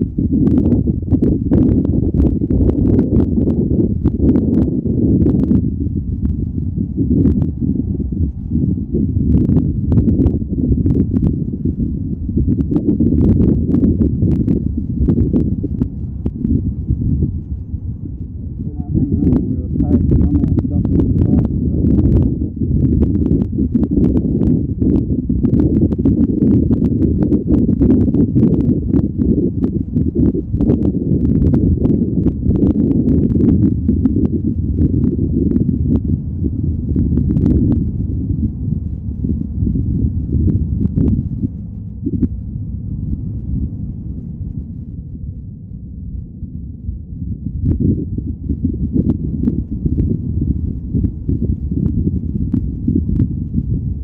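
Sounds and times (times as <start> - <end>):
wind buffeting microphone: 0.0 - 54.0.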